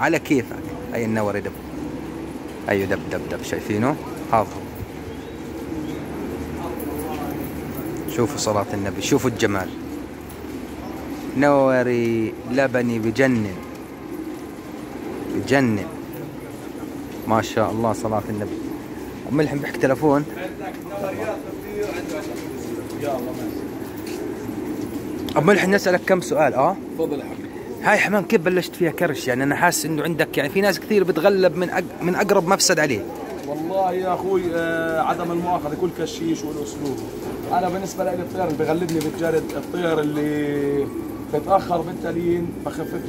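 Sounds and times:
pigeons cooing: 0.0s - 43.0s.

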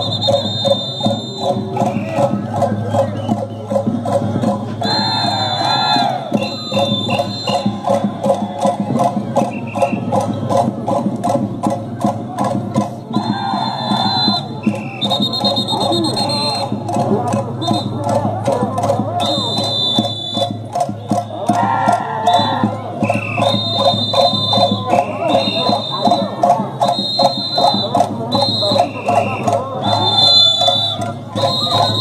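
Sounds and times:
drum beating fast rhythm: 0.0s - 32.0s
high held tones: 6.3s - 8.1s
wavering voices: 20.7s - 32.0s.

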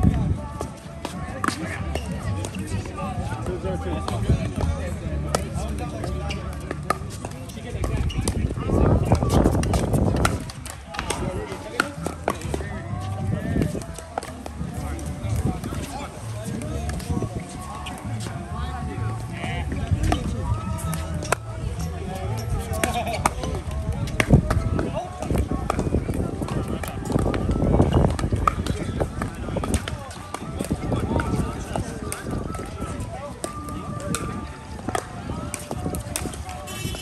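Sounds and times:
background voices: 0.0s - 37.0s
paddles hitting ball: 0.6s - 18.3s, 19.6s - 36.7s.

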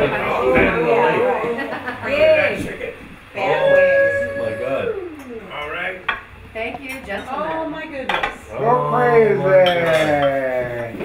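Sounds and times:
dishes and cutlery clinking: 9.5s - 11.0s.

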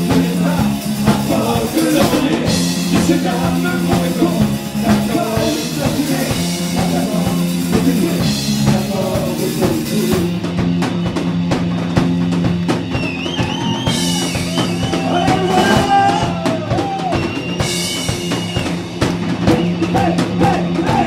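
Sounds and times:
bass notes: 0.0s - 21.0s
drum kit beat: 0.0s - 21.0s.

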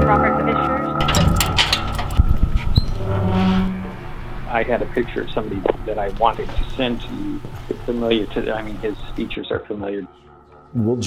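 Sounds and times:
key clicking in deadbolt lock: 1.0s - 2.2s
low hum with hiss: 1.0s - 9.5s.

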